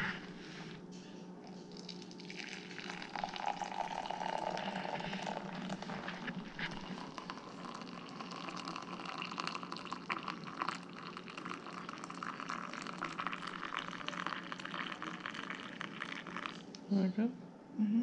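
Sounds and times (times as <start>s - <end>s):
liquid pouring into mug: 1.4s - 16.7s.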